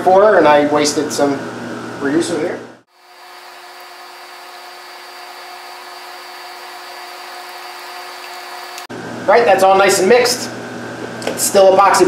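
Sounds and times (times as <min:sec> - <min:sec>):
electric mixer motor whining: 0:02.9 - 0:08.9.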